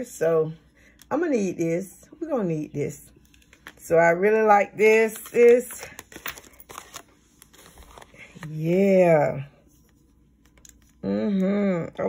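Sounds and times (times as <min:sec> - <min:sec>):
paper and plastic rustling: 0:05.0 - 0:08.6.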